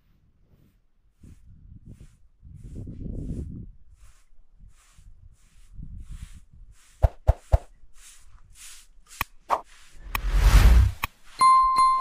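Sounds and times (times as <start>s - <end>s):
broom sweeping dirt floor: 0.0s - 11.6s.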